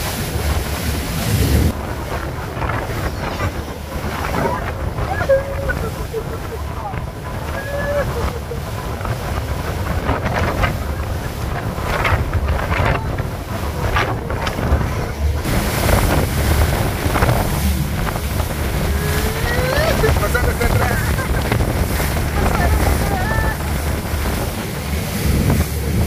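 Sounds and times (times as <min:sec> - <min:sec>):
water rushing past a boat hull: 0:00.0 - 0:26.0
wind buffeting the microphone: 0:00.0 - 0:26.0.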